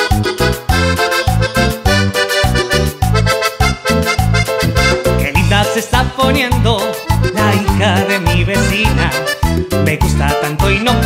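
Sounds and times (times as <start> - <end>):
accordion melody: 0.0 - 11.0
pulsing bass line: 0.0 - 11.0.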